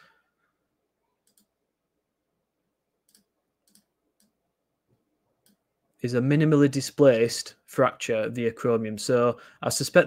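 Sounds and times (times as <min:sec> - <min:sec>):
computer mouse clicks: 0:01.2 - 0:01.5, 0:03.0 - 0:04.4.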